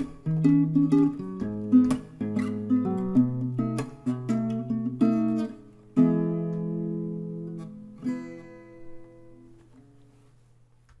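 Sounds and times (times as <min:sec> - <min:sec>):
acoustic guitar chord ringing: 0:00.0 - 0:09.9
soft picked guitar notes: 0:00.0 - 0:10.0.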